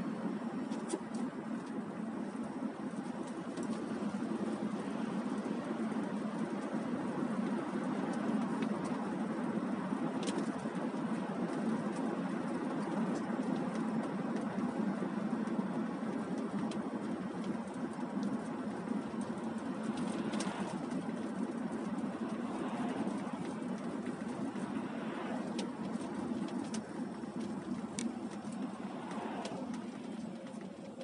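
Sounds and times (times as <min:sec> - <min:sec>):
car road and engine rumble: 0:00.0 - 0:31.0
passing car swishing: 0:18.5 - 0:31.0.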